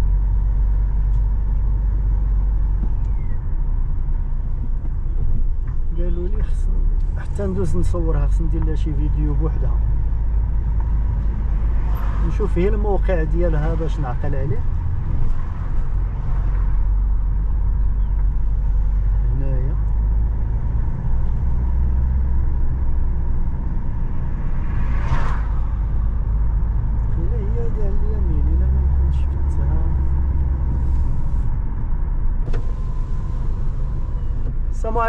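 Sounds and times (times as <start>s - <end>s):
car engine and tyre rumble: 0.0s - 35.0s
passing vehicle whoosh: 9.6s - 34.8s.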